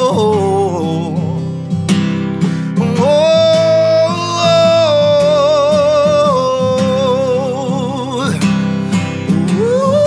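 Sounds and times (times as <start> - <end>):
man singing: 0.0 - 10.0
strummed acoustic guitar: 0.0 - 10.0.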